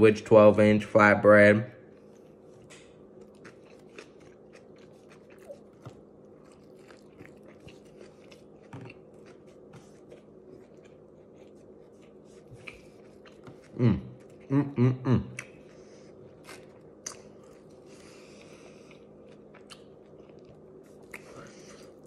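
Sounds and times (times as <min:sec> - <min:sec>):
steady low hum: 0:00.0 - 0:22.0
chewing with mouth clicks: 0:02.0 - 0:14.5, 0:15.3 - 0:22.0.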